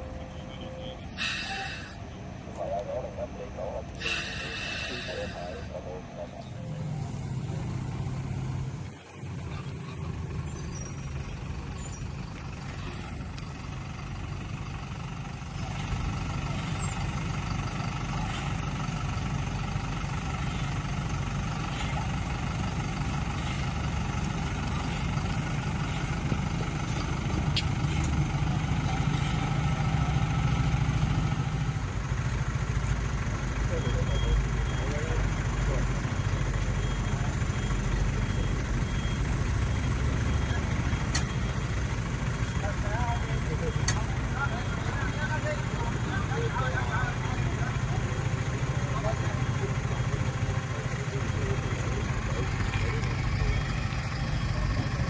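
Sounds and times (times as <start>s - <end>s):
diesel engine running at low revs: 0.0s - 55.0s.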